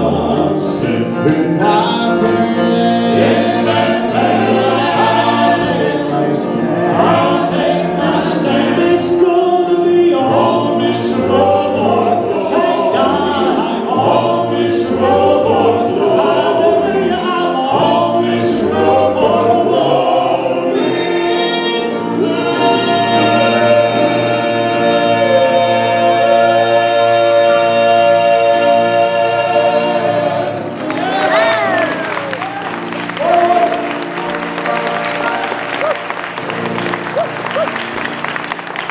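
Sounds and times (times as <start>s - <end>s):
male quartet singing in harmony: 0.0s - 37.1s.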